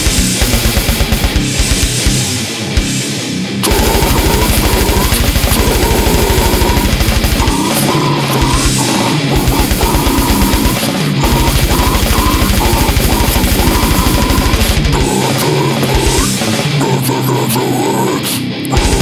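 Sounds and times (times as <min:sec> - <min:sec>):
double-kick bass drum: 0:00.0 - 0:02.2, 0:03.7 - 0:07.8, 0:09.4 - 0:15.2
death metal music: 0:00.0 - 0:19.0
distorted electric guitars: 0:00.0 - 0:19.0.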